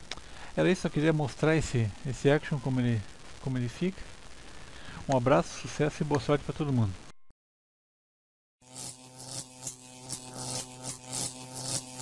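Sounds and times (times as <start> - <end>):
irregular electric crackles: 0.0 - 7.0, 8.6 - 12.0
electric buzzing hum: 8.6 - 12.0.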